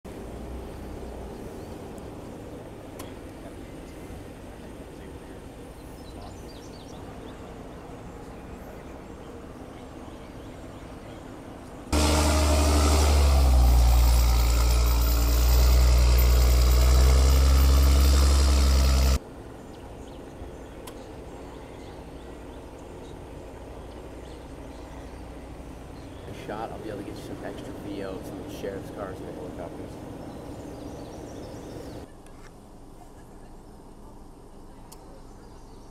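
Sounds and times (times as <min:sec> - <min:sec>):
faint outdoor background: 0:00.1 - 0:35.9
diesel truck engine running: 0:11.9 - 0:19.2.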